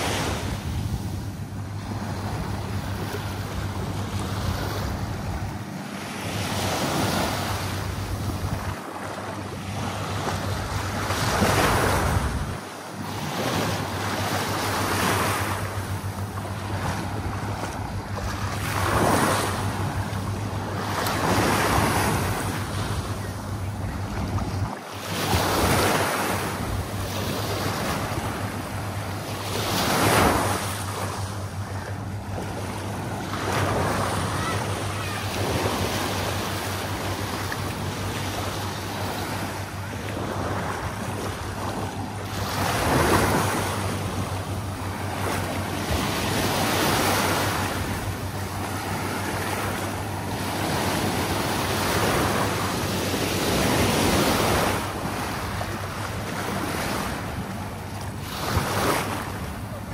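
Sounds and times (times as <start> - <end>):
wind rumbling on microphone: 0.0 - 12.6
small waves lapping on sand: 0.0 - 59.9.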